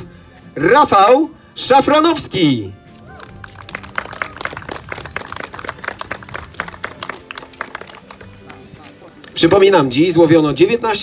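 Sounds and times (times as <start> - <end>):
small group applauding: 3.1 - 9.0.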